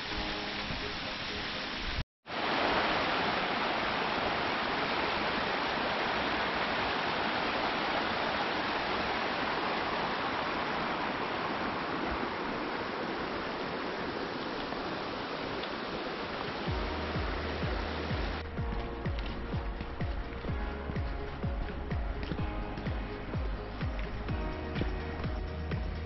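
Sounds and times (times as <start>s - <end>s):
stream rushing over rock: 0.0s - 26.0s.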